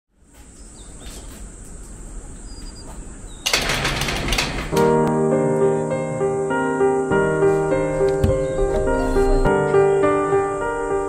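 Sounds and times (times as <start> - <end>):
bird chirps: 0.5 - 1.4, 2.4 - 3.5, 7.4 - 9.8
loud rattling burst: 3.4 - 4.9.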